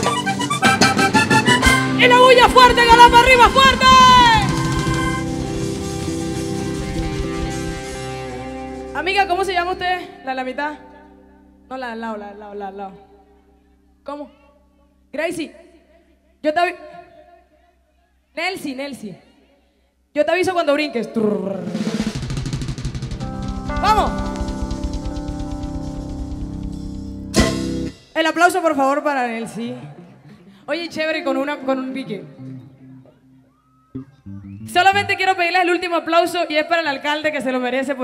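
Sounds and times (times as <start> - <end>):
accordion: 0.0 - 9.1, 23.2 - 28.0
electric bass: 0.0 - 10.2, 22.2 - 28.0, 34.0 - 35.2
drum strokes: 2.6 - 8.8, 21.6 - 28.2
low drum hits: 22.0 - 28.0.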